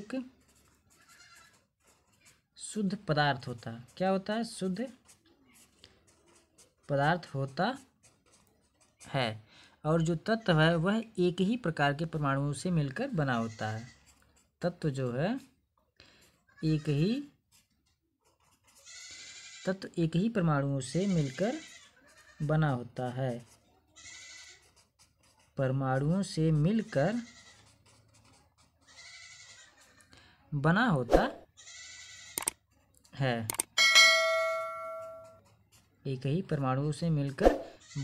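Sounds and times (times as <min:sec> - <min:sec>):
marker scratching on paper: 0:00.0 - 0:10.8, 0:12.9 - 0:30.1, 0:34.6 - 0:37.9
mouse clicks: 0:32.4 - 0:32.6, 0:33.5 - 0:33.7
bright bell ding: 0:33.8 - 0:35.4.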